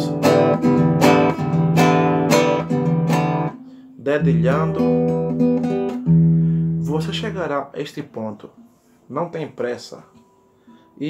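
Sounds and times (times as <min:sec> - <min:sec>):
acoustic guitar fingerpicking: 0:00.0 - 0:07.2.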